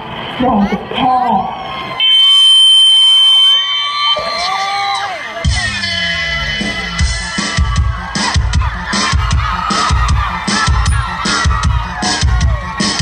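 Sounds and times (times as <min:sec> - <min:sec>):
man speaking over pa system: 0:00.4 - 0:01.6
dance track with heavy beat: 0:05.3 - 0:13.0.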